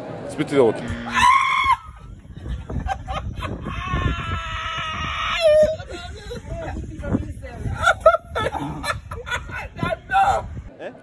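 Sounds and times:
man laughing in high squeals: 0:00.9 - 0:06.5.

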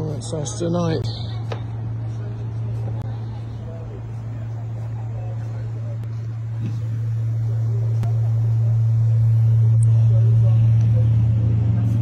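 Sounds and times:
faint distant voices: 0:00.0 - 0:12.0
loud steady low hum: 0:00.0 - 0:12.0.

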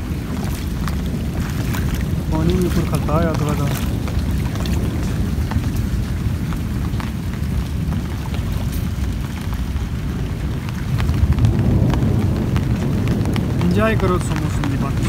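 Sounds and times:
heavy rain on metal roof: 0:00.0 - 0:15.0.

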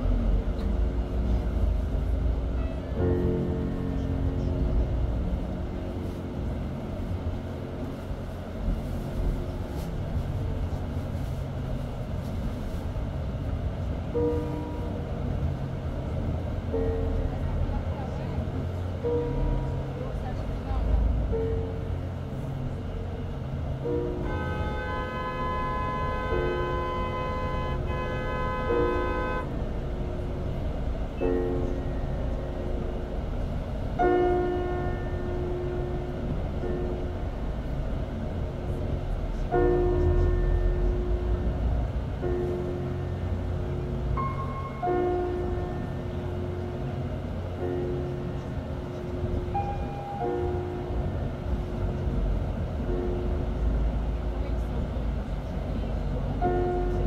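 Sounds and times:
vehicle engine and road rumble: 0:00.0 - 0:57.0.

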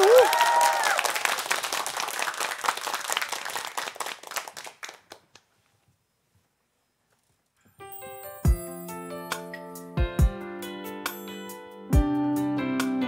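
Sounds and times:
brief cheer: 0:00.0 - 0:01.3
small group clapping: 0:00.0 - 0:05.5.

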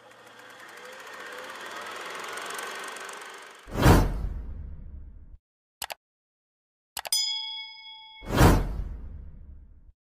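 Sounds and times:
bell-like ding: 0:07.1 - 0:08.9.

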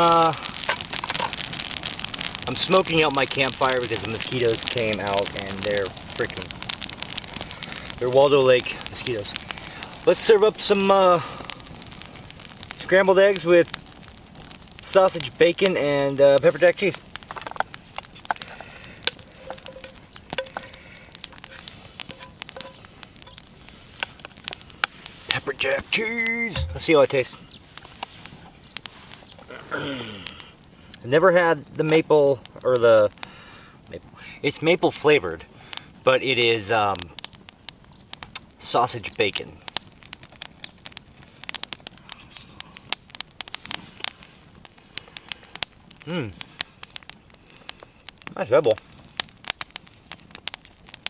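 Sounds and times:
campfire crackling: 0:00.0 - 0:51.0.

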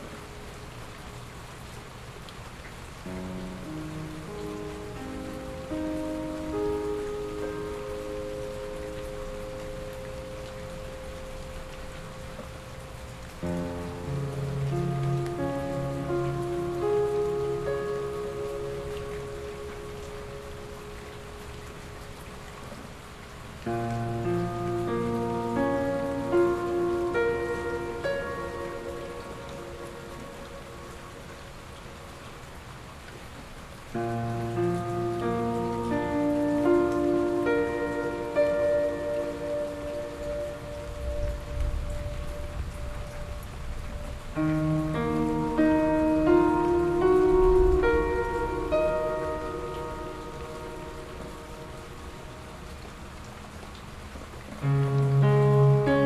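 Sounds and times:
soft slow piano notes: 0:00.0 - 0:56.0
steady rain hiss: 0:00.0 - 0:56.0.

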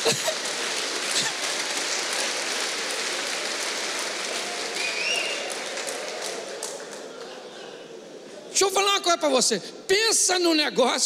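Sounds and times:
audience clapping: 0:00.0 - 0:07.6
high call from crowd: 0:03.7 - 0:06.5
audience laughing: 0:07.0 - 0:08.2.

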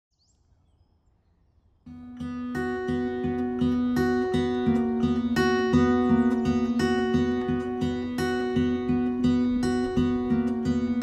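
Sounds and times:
strummed acoustic guitar: 0:01.9 - 0:11.0.

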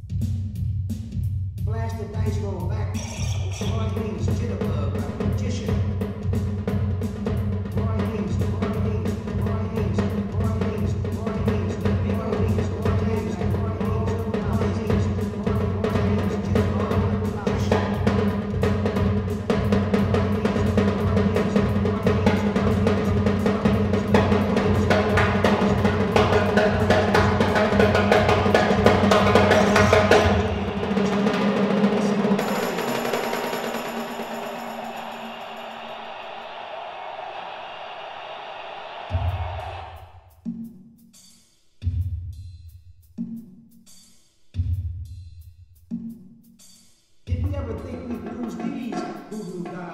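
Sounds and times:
fast drum playing: 0:00.0 - 0:37.4, 0:39.0 - 0:40.2, 0:47.3 - 0:49.9
loud drum hits: 0:14.3 - 0:36.0, 0:39.1 - 0:40.0.

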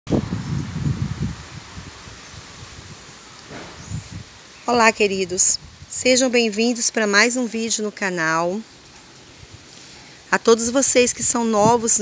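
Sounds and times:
low rumbling on microphone: 0:00.1 - 0:06.1
faint outdoor hiss: 0:00.1 - 0:12.0.

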